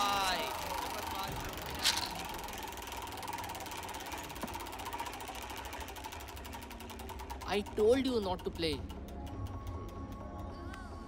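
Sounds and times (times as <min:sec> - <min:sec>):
roulette ball ticking: 0:00.0 - 0:10.9.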